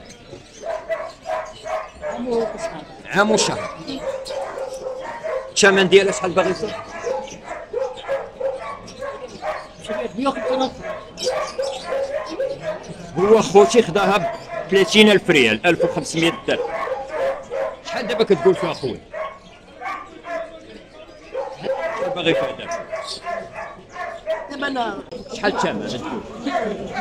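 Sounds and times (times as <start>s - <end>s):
dog barking: 0.5s - 20.6s, 21.2s - 27.0s
people talking: 2.0s - 4.2s, 9.8s - 11.4s, 12.6s - 16.7s, 20.7s - 23.2s, 24.5s - 27.0s.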